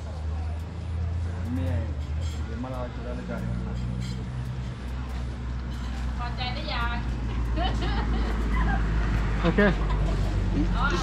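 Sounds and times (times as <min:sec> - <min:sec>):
people talking: 0:06.2 - 0:08.7, 0:09.4 - 0:11.0.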